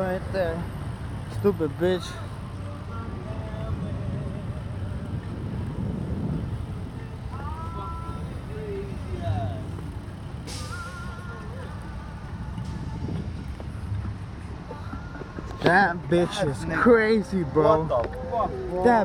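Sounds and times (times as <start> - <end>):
cars idling and pulling through: 0.0 - 19.0
brief hiss: 10.5 - 11.0.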